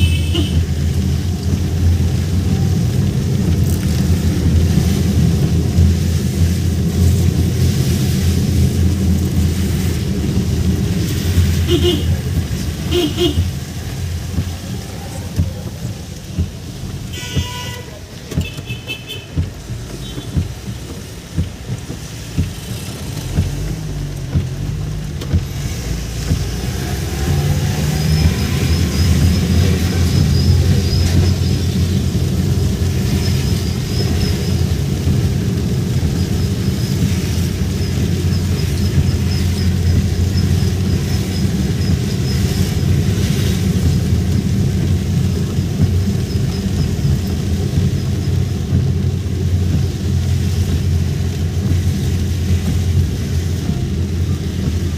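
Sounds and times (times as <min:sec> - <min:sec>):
car engine and road rumble: 0:00.0 - 0:54.9.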